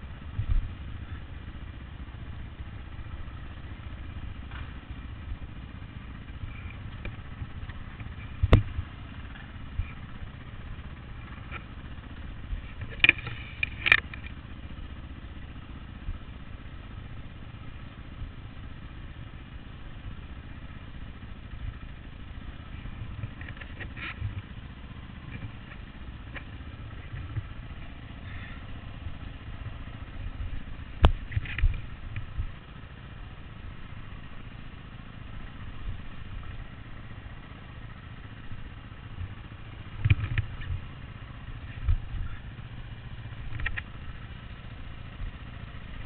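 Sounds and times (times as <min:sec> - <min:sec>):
dirt bike engine at low revs: 0:00.0 - 0:46.0.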